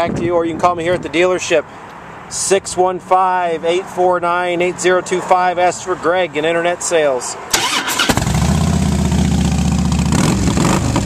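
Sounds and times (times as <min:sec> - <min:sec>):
motorcycle engine idling: 0:08.3 - 0:10.2.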